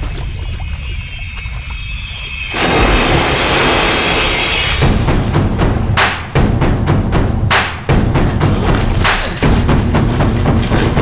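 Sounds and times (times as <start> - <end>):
dramatic film score: 0.0 - 11.0
big water splash: 2.4 - 5.3
heavy thudding percussion: 4.8 - 11.0.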